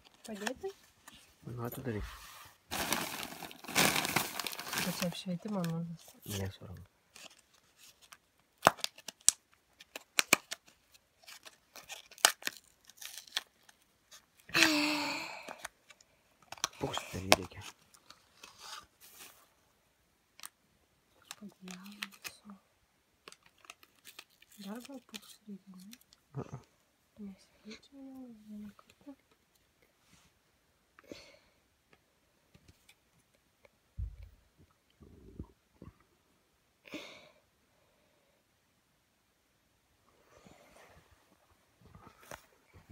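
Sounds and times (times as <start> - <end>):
paper and plastic crinkling: 2.7 - 14.5, 15.8 - 19.5, 21.2 - 22.5, 23.2 - 26.1
low thump: 34.0 - 34.3.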